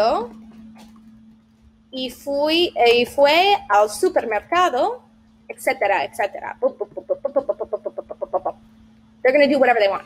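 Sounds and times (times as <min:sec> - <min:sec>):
woman rattling off nonsense syllables: 0:06.6 - 0:08.6.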